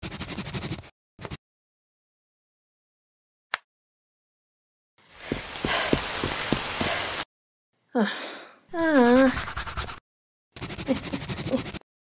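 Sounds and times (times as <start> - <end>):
heavy rain: 5.0 - 7.2.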